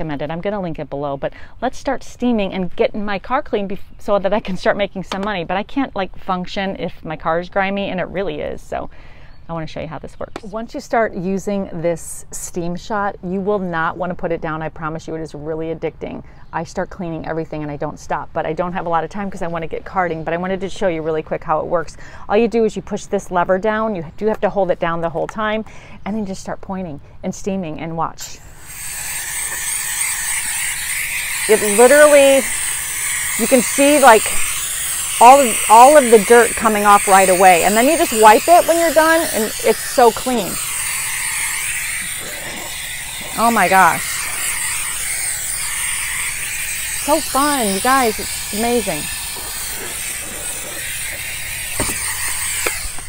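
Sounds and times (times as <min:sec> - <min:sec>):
steam cleaner hissing: 0:28.4 - 0:53.0.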